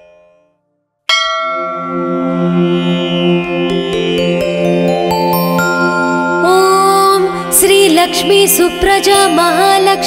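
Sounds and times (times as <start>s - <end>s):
bell ringing: 1.1s - 7.9s
sustained instrumental tones: 1.1s - 10.0s.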